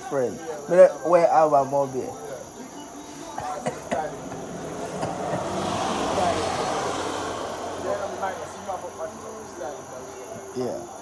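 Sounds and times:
motor vehicle passing by: 0:03.7 - 0:10.4.

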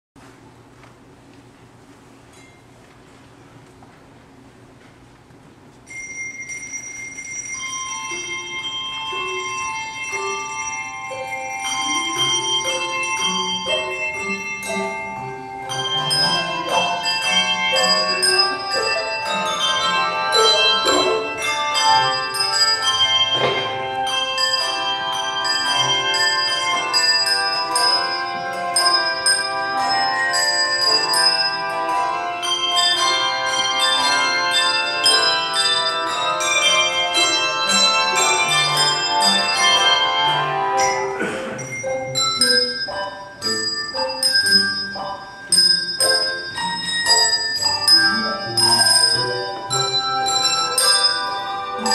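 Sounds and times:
handbell choir ringing: 0:05.9 - 0:51.9.

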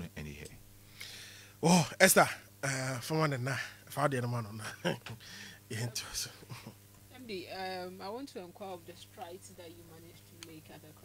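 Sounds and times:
breathy whispering voices: 0:05.2 - 0:06.7.

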